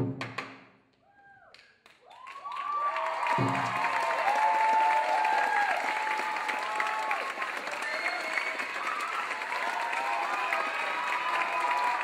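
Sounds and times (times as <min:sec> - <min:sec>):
audience cheering and applause: 0:01.1 - 0:12.0
audience whoops: 0:01.1 - 0:12.0.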